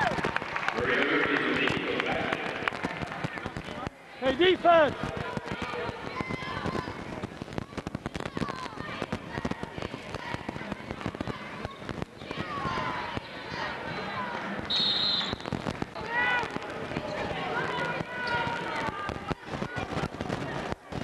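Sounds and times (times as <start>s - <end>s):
chatter of voices: 0.8s - 21.0s.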